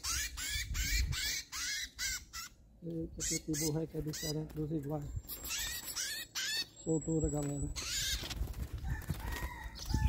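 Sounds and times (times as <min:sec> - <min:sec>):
low wind rumble: 0:00.0 - 0:05.3, 0:06.9 - 0:10.0.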